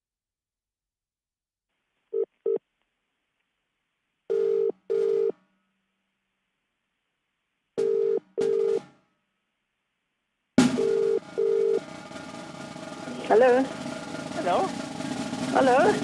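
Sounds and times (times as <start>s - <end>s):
telephone ringback tone: 4.3s - 5.3s, 7.8s - 8.8s, 10.8s - 11.8s.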